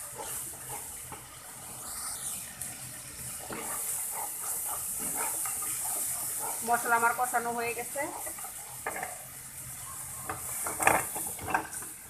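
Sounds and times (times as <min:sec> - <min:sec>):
spoon scraping a pan: 0:00.0 - 0:02.3, 0:03.3 - 0:09.2, 0:10.3 - 0:12.0
curry sizzling in a pan: 0:00.0 - 0:12.0.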